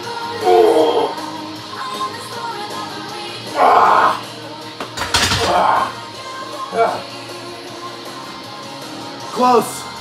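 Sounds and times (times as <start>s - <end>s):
pop music: 0.0s - 10.0s.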